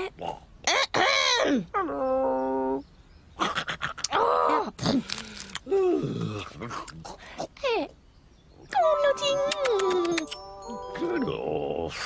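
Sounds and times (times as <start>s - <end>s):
little clicks: 9.4s - 10.5s.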